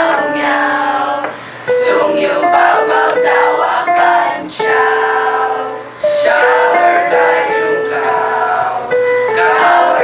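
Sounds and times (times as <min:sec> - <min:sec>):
choir singing sustained notes: 0:00.0 - 0:10.0.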